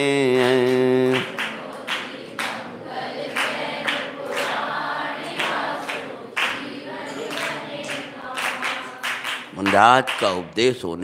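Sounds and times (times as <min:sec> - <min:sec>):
group singing devotional song: 0:00.0 - 0:10.2
rhythmic hand claps: 0:00.0 - 0:10.8.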